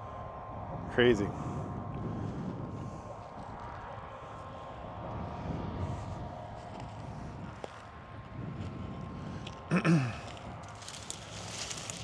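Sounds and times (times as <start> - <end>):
faint machine hum: 0.0 - 12.0
low rumble: 0.0 - 12.0.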